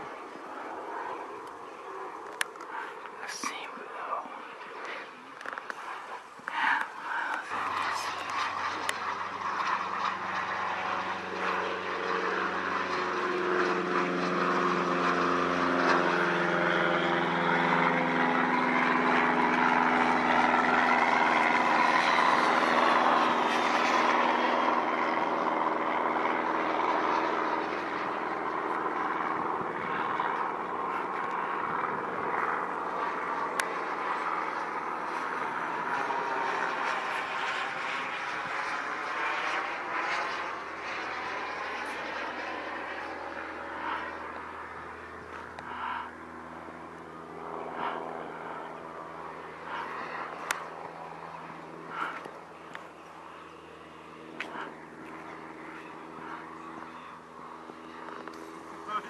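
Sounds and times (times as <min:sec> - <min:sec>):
model jet turbine rushing: 0:00.0 - 0:15.2.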